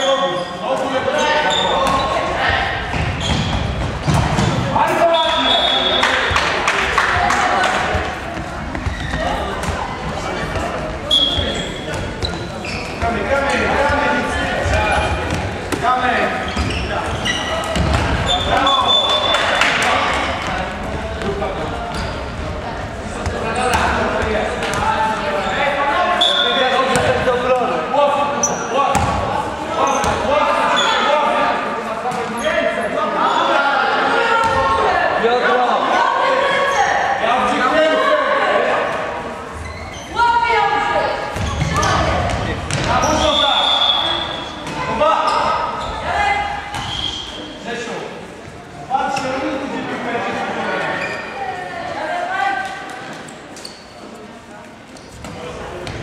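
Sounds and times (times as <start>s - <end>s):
ball bouncing on hall floor: 1.8s - 4.7s, 16.5s - 22.1s, 23.2s - 24.9s, 28.9s - 29.3s, 41.3s - 43.2s.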